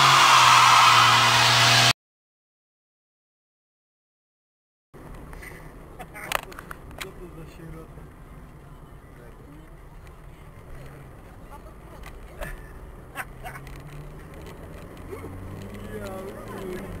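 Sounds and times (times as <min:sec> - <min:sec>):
car engine and tyre drone: 0:00.0 - 0:02.0, 0:05.0 - 0:17.0.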